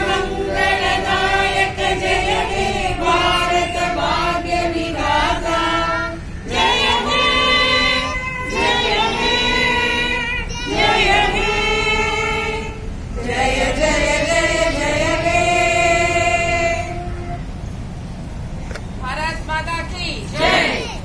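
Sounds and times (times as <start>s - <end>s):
women singing together: 0.0s - 17.4s, 20.3s - 20.9s.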